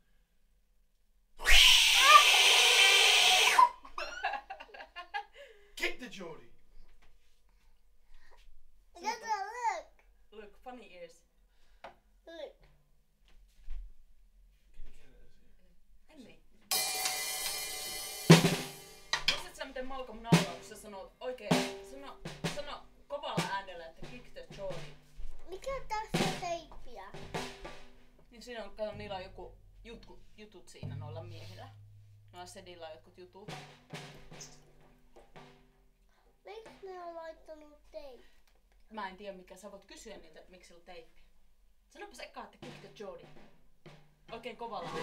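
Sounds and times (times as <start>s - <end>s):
harsh vocal shriek: 1.4s - 3.8s
short gliding yelps: 1.4s - 3.8s
cymbal ringing: 16.7s - 19.4s
drum hits: 16.7s - 37.1s, 42.1s - 45.0s.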